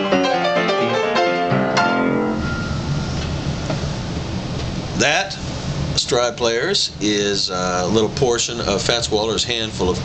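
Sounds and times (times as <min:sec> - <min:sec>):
piano phrase: 0:00.0 - 0:04.5
low hum with hiss: 0:00.0 - 0:10.0.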